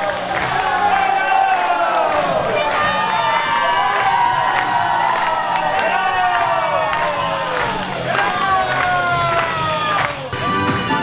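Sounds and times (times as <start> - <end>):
hand claps: 0.0 - 10.4
audience cheering and shouting: 0.0 - 11.0.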